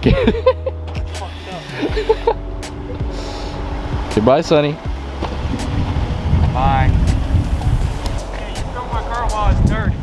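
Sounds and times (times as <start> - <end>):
car engine low exhaust hum: 1.8 - 8.5.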